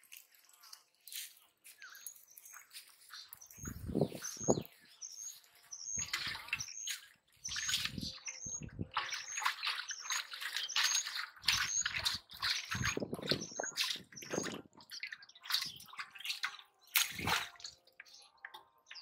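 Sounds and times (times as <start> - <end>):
small birds chirping: 0.0 - 19.0
water splashing in steel basin: 6.0 - 18.6.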